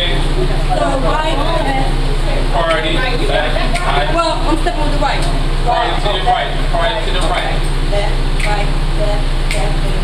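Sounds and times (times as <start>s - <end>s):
loud voices speaking: 0.0s - 10.0s.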